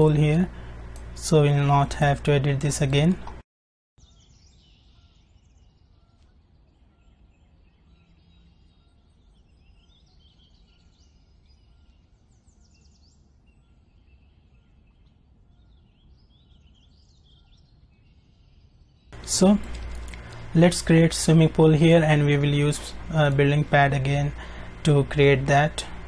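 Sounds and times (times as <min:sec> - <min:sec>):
low steady hum: 0:00.0 - 0:03.4, 0:04.0 - 0:26.0
faint birds chirping: 0:04.0 - 0:26.0.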